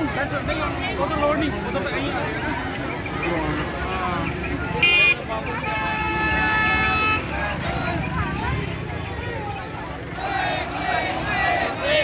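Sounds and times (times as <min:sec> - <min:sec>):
crowd chatter: 0:00.0 - 0:12.0
vehicle horns honking: 0:04.8 - 0:07.4.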